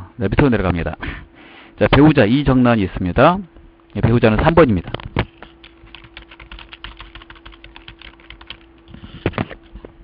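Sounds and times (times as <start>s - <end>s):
faint steady hum: 0.0s - 10.0s
typing on computer keyboard: 5.6s - 8.8s.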